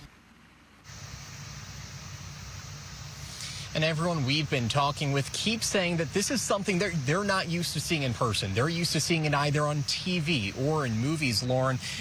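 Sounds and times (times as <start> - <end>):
low hum: 0.0 - 12.0
steady background hiss: 0.0 - 12.0.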